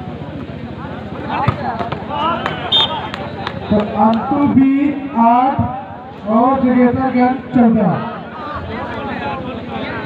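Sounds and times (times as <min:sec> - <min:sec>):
crowd calling out and chattering: 0:00.0 - 0:10.0.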